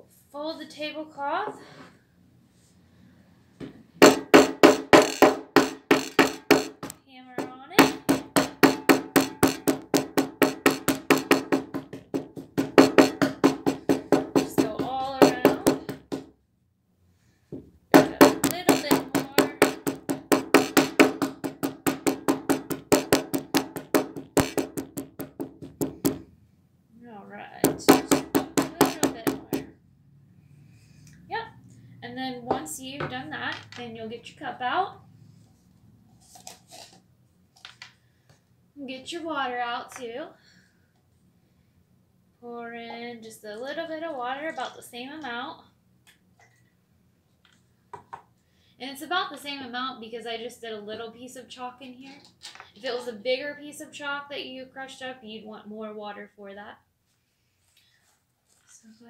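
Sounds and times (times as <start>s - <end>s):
hammer crushing chalk on table: 4.0s - 16.3s, 17.9s - 26.3s, 27.7s - 29.7s.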